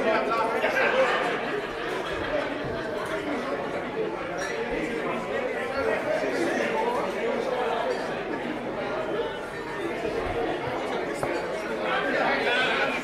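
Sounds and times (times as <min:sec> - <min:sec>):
background chatter: 0:00.0 - 0:13.0.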